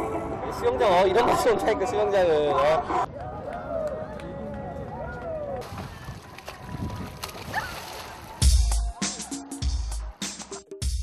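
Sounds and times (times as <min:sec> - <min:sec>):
water sloshing: 0:05.6 - 0:08.9.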